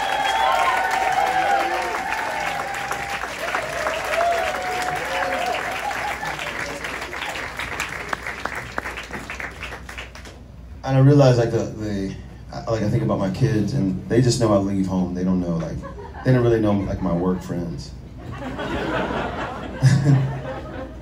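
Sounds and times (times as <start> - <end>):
cheering whoops and calls: 0.0 - 7.4
crowd applauding: 0.0 - 10.4.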